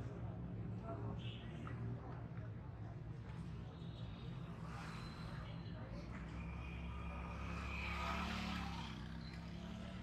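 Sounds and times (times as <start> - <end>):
small motorcycle engine passing: 7.0 - 10.0.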